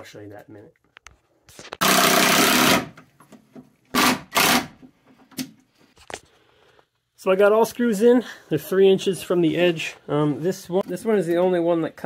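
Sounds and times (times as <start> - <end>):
cordless drill driving screws: 1.8 - 3.0, 3.9 - 4.8.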